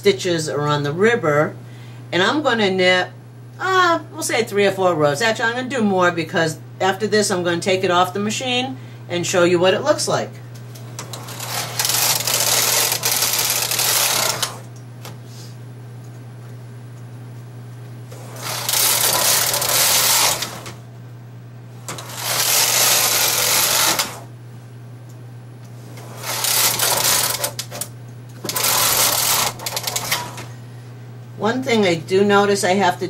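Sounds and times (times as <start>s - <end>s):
knitting machine carriage rattling: 11.0s - 14.6s, 18.4s - 20.8s, 21.9s - 24.3s, 26.0s - 30.5s.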